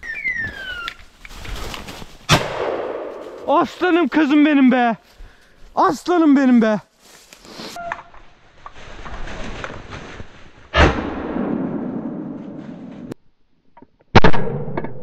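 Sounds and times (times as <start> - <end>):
shotgun shots: 2.3 - 3.2.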